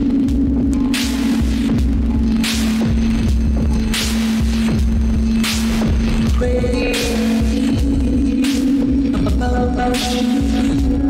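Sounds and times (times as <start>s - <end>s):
low bass pulses: 0.0s - 11.0s
synthesizer humming drone: 0.0s - 11.0s.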